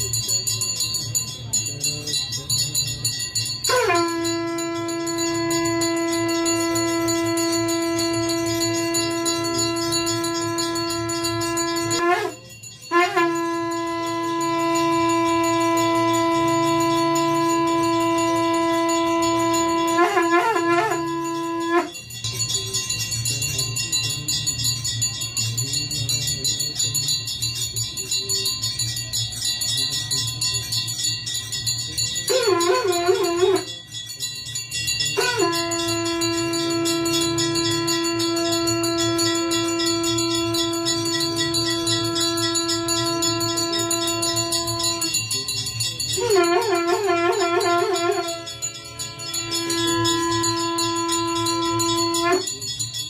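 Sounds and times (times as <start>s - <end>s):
conch shell blowing: 0.0s - 25.8s, 26.4s - 53.0s
hand bell ringing: 0.0s - 53.0s.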